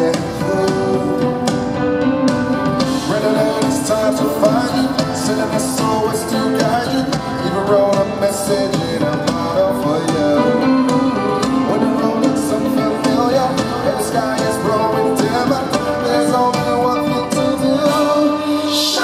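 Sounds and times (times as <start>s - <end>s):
men singing: 0.0s - 1.8s, 2.8s - 19.0s
band playing pop ballad: 0.0s - 19.0s.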